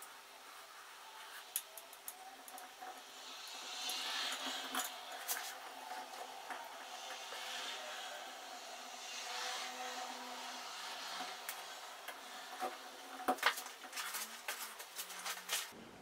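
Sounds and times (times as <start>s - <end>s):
hands handling thin wire: 11.4s - 15.7s.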